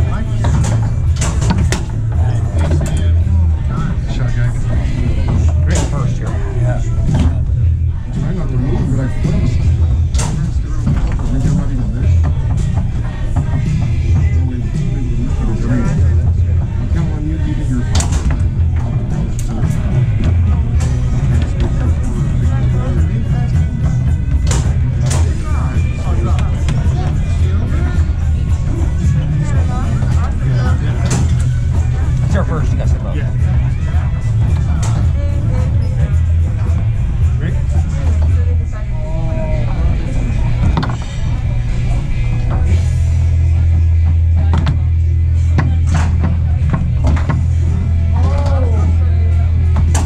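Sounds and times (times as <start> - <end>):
people talking: 0.0 - 46.8, 47.8 - 50.0
background chatter: 0.0 - 50.0
background music with bass: 0.0 - 50.0
foosball clack: 45.5 - 48.6.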